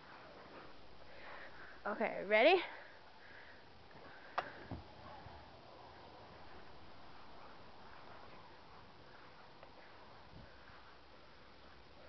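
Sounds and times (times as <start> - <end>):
faint background hiss: 0.0 - 12.0
soft low thump: 4.5 - 5.4.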